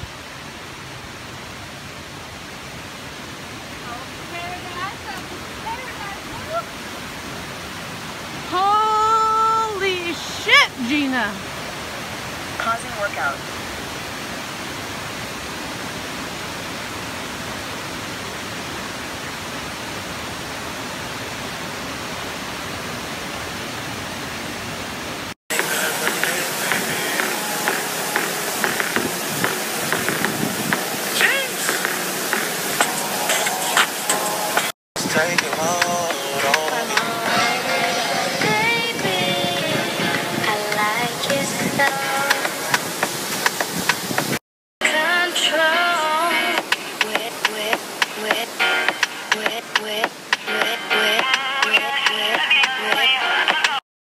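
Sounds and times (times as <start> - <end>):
waterfall rushing: 0.0 - 53.8
music with singing: 25.5 - 42.9, 44.8 - 53.8.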